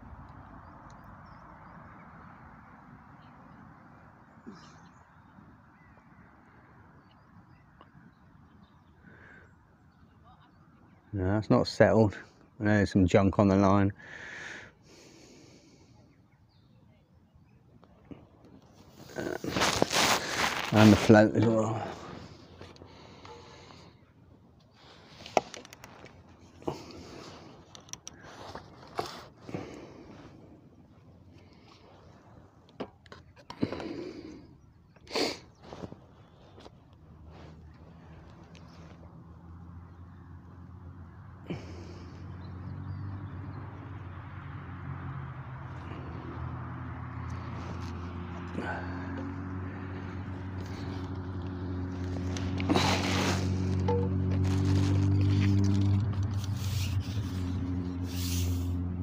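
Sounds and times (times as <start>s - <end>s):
low engine hum: 14.4s - 59.0s.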